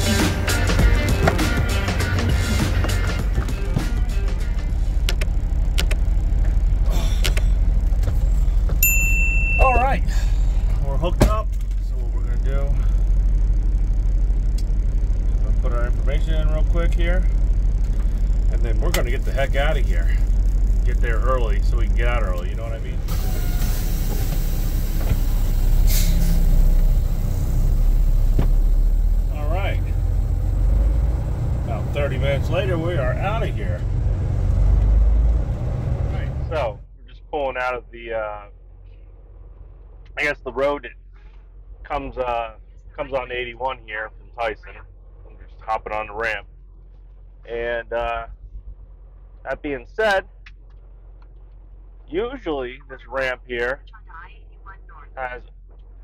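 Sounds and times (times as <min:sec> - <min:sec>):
diesel engine droning: 0:00.0 - 0:56.0.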